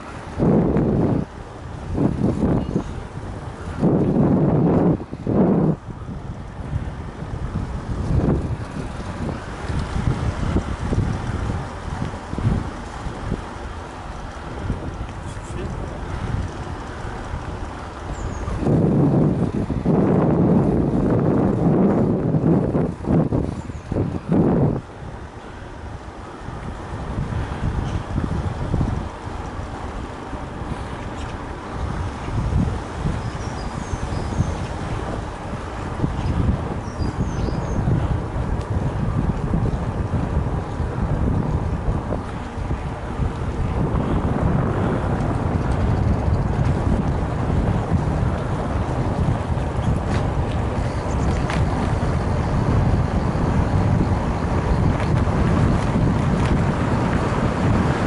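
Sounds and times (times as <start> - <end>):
tyre and road rumble: 0.0 - 58.0
wind buffeting microphone: 0.0 - 58.0.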